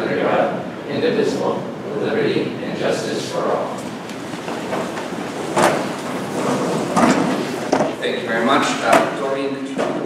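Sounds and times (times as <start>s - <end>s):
people shuffling: 3.6s - 9.2s
chairs scraping and knocking: 3.7s - 10.0s.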